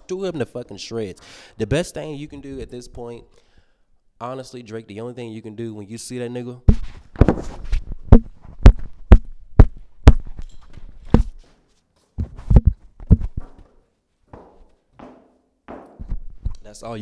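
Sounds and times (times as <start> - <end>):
handheld microphone thumps and knocks: 6.7 - 11.5, 12.2 - 16.6.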